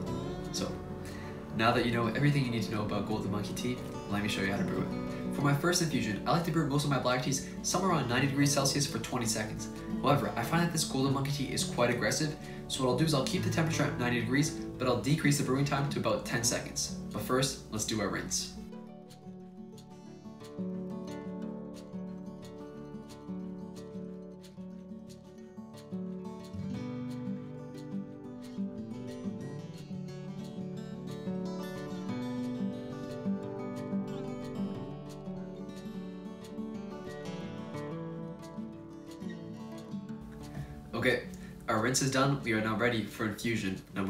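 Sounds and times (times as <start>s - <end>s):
plucked acoustic guitar melody: 0.0s - 44.0s.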